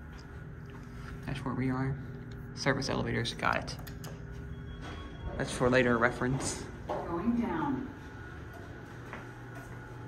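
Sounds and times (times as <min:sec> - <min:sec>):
elevator low hum: 0:00.0 - 0:10.0.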